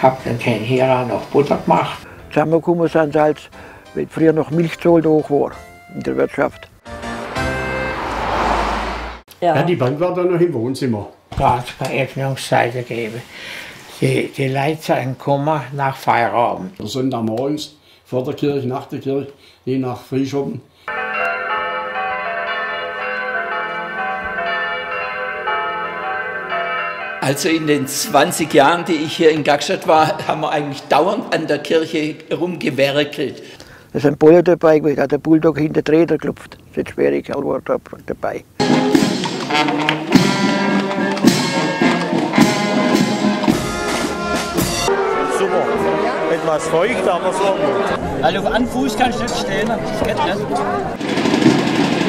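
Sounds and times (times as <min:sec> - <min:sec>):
church bells ringing: 0:20.9 - 0:29.8
man's voice: 0:27.2 - 0:33.4, 0:44.4 - 0:50.9
brass band playing a march: 0:38.6 - 0:48.0
crowd chatter: 0:44.1 - 0:51.3.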